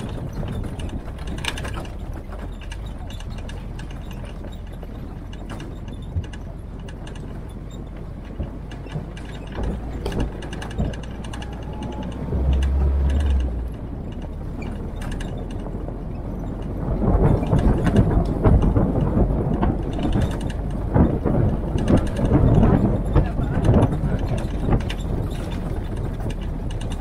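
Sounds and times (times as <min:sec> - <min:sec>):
low running engine: 0:00.0 - 0:27.0
vehicle rattling over gravel: 0:00.0 - 0:27.0.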